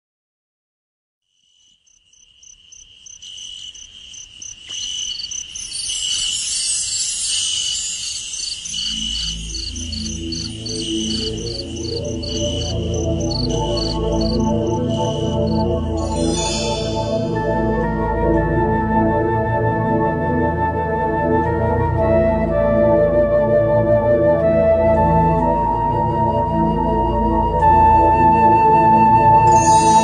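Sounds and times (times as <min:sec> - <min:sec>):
insects chirping: 0:01.2 - 0:17.5
slow ambient music: 0:05.6 - 0:30.0.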